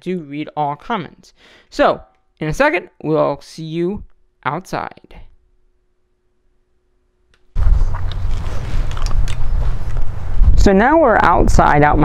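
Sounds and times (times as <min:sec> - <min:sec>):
wind buffeting microphone: 0:07.6 - 0:12.0.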